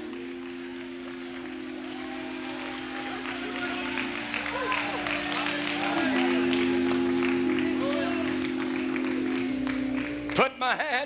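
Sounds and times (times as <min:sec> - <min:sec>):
congregation voices calling out: 0:00.0 - 0:11.0
organ holding sustained chords: 0:00.0 - 0:11.0.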